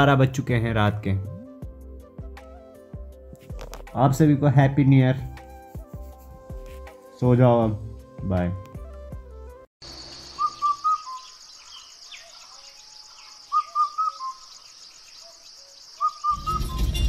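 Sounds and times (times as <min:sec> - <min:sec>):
music: 0:00.0 - 0:09.7, 0:16.3 - 0:17.0
bird chirping: 0:09.8 - 0:17.0.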